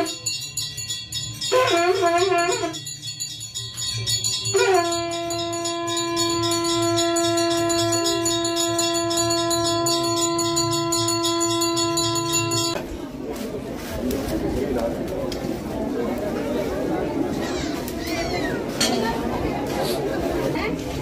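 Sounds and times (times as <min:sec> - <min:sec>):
conch shell blown: 0:00.0 - 0:00.4, 0:01.4 - 0:02.9, 0:04.4 - 0:12.8
small bell ringing rapidly: 0:00.0 - 0:12.8.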